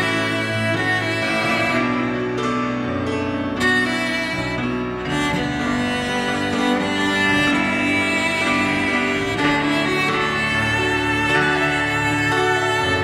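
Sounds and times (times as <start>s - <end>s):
bowed cello long notes: 0.0s - 13.0s
grand piano accompaniment: 0.0s - 13.0s.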